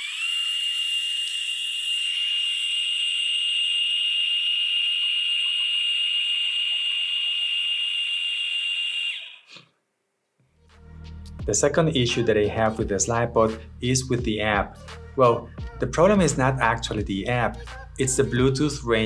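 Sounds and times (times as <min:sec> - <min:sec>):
motorized slider whining: 0:00.0 - 0:09.4.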